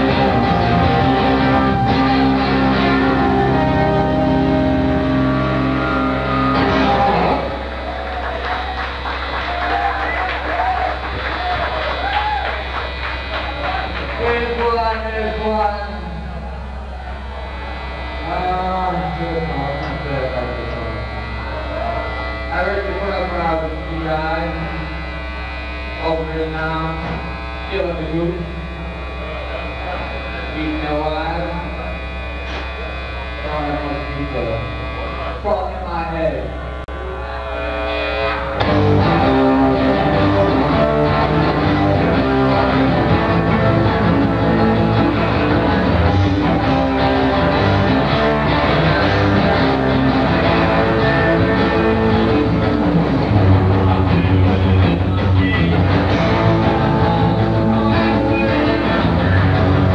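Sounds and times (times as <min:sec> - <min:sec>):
electric guitar bent notes: 0:00.0 - 0:59.9
mains hum: 0:00.0 - 0:59.9
rock band chord: 0:00.0 - 0:59.9.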